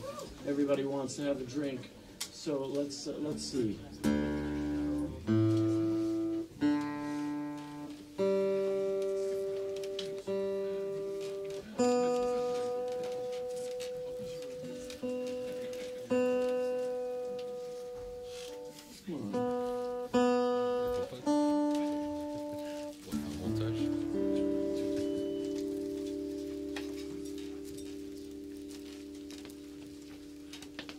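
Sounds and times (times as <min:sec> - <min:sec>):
acoustic guitar chords ringing: 0:03.5 - 0:30.9.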